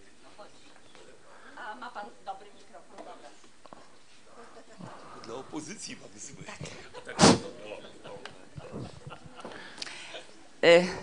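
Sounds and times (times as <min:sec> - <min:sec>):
faint murmur of voices: 0:00.0 - 0:11.0
microphone handling noise: 0:08.5 - 0:09.5.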